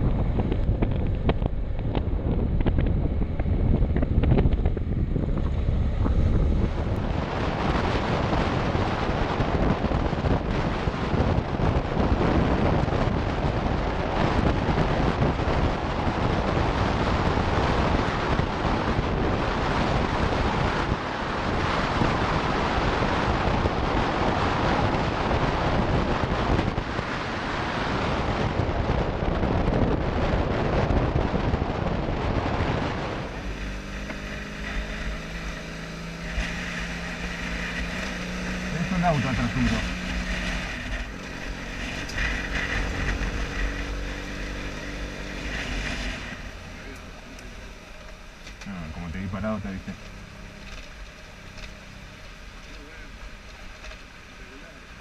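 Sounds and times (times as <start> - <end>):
wind buffeting microphone: 0.0 - 54.9
motorcycle engine hum: 0.0 - 55.0.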